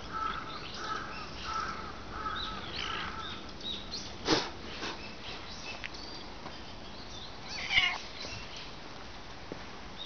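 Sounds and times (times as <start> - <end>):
cat meowing: 7.4 - 8.1.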